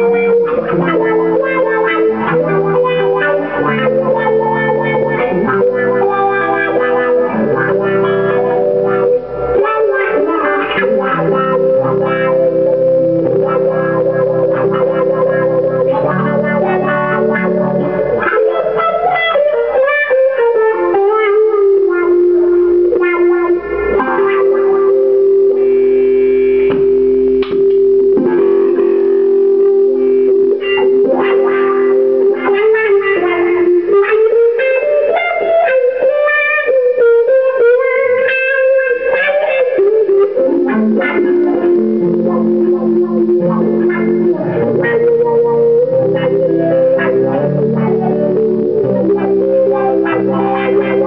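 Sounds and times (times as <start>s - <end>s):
electric guitar with wah pedal: 0.0s - 51.0s.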